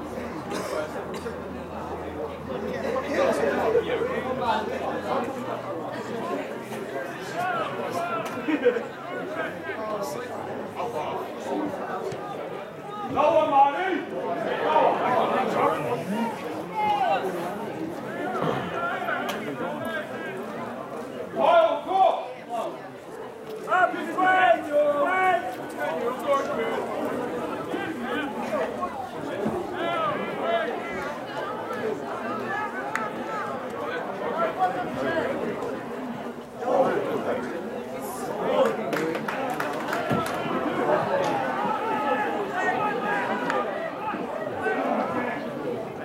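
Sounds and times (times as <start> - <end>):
overlapping voices chattering: 0.0 - 46.0.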